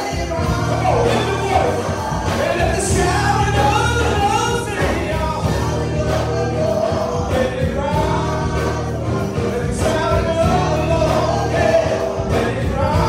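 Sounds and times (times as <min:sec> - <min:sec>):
choir singing in harmony: 0:00.0 - 0:13.0
drums: 0:00.0 - 0:13.0
low bass line: 0:00.2 - 0:13.0.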